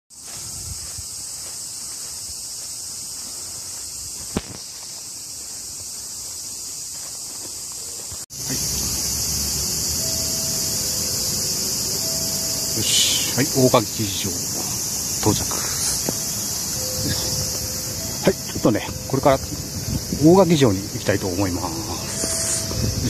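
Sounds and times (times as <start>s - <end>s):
cicadas droning: 0.1s - 23.0s.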